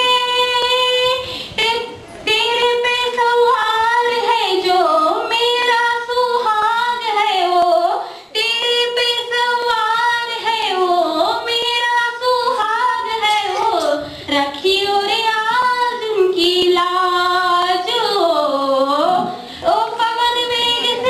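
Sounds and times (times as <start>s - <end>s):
woman singing unaccompanied: 0.0s - 21.0s
singer breathing: 1.2s - 1.6s, 8.0s - 8.4s, 19.4s - 19.7s.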